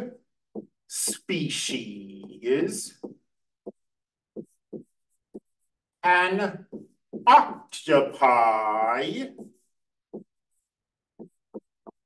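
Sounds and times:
stylus tapping and scratching: 0.0 - 7.7, 8.8 - 12.0.

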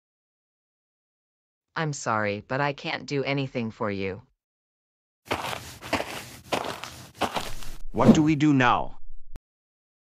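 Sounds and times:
footsteps on hard floor: 5.3 - 7.8.

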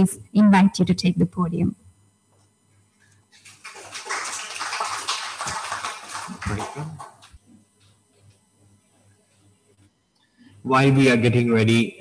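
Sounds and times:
audience applauding: 3.4 - 7.4.

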